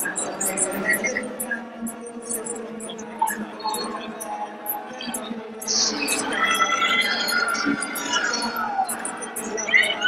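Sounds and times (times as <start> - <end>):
large hall background noise: 0.0 - 10.0.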